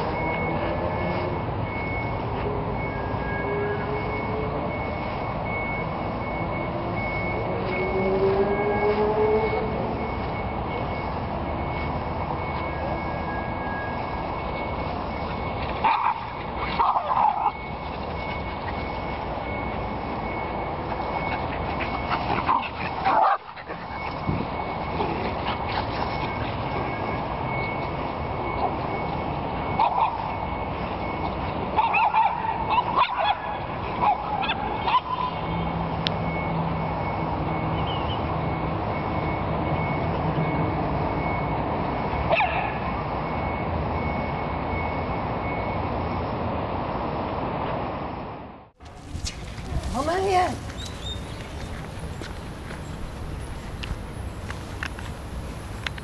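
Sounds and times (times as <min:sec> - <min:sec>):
background noise with high tone: 0:00.0 - 0:56.0
dogs barking and yipping: 0:14.6 - 0:35.4, 0:42.2 - 0:42.9, 0:49.0 - 0:56.0.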